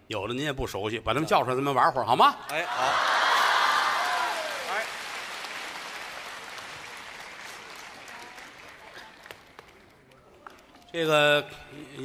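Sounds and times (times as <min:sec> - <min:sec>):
audience applauding: 0:02.7 - 0:10.7.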